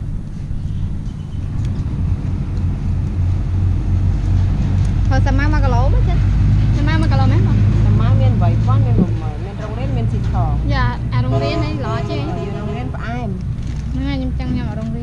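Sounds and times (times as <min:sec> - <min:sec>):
vehicle engine running: 0:00.0 - 0:15.0
people talking: 0:05.1 - 0:15.0.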